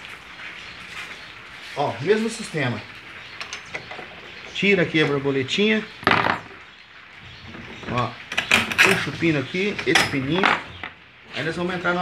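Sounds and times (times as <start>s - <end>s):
metal parts clattering: 7.5s - 10.9s.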